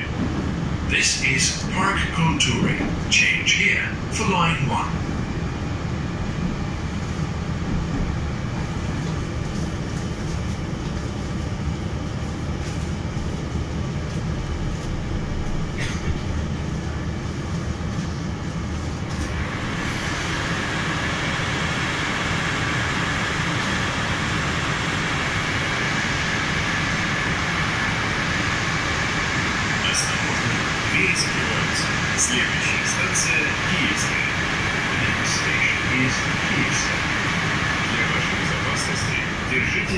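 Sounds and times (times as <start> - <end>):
metro train rumble: 0.0 - 39.9.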